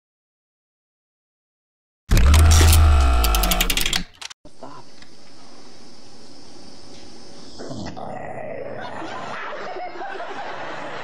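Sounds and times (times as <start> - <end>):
rapid rattle of clicks: 2.1 - 4.4.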